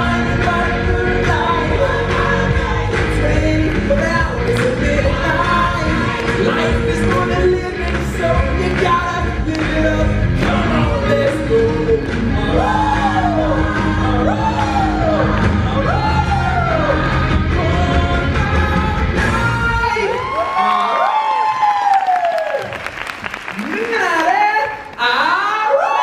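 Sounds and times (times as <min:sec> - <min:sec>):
live rock band: 0:00.0 - 0:20.2.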